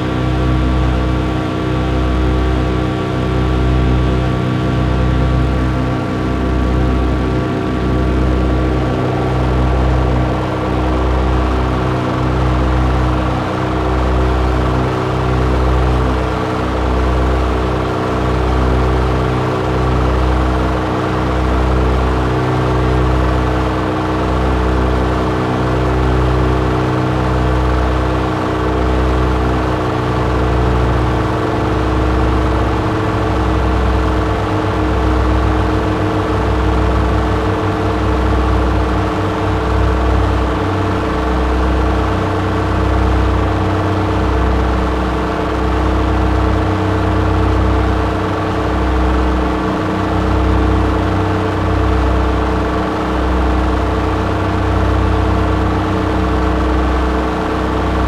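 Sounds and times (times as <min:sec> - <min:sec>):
synthesizer drone: 0:00.0 - 0:58.0
throbbing low bass: 0:00.0 - 0:58.0.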